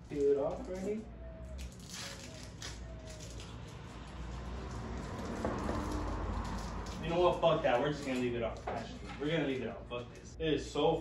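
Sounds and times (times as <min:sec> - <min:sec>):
tape rustling: 0:00.0 - 0:10.3
tape scratching: 0:00.0 - 0:10.4.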